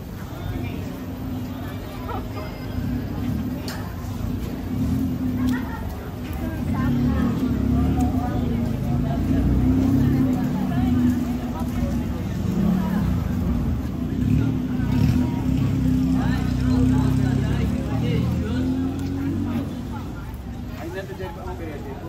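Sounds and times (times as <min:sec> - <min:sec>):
chatter of passers-by: 0:00.0 - 0:22.0.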